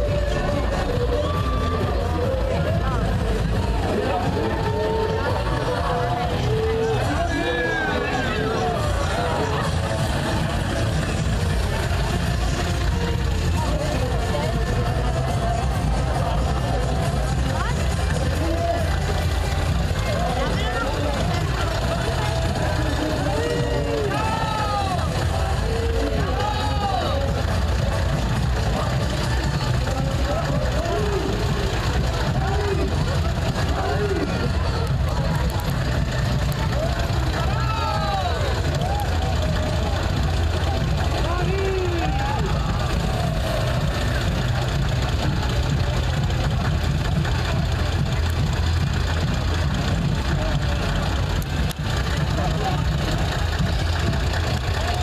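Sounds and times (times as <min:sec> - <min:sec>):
crowd voices and calls: 0:00.0 - 0:55.0
truck engine idling: 0:00.0 - 0:55.0.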